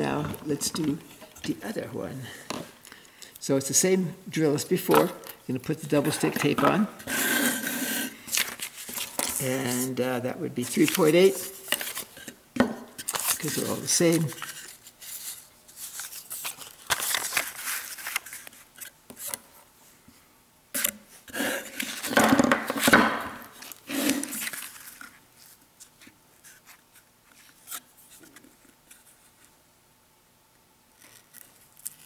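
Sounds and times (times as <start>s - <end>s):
rustling and scraping on workbench: 6.1s - 9.9s.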